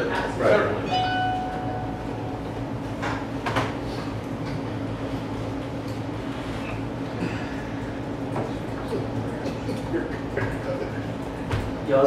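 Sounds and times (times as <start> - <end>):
steady low hum: 0.0 - 12.0
high-pitched squeaky tone: 0.9 - 2.3.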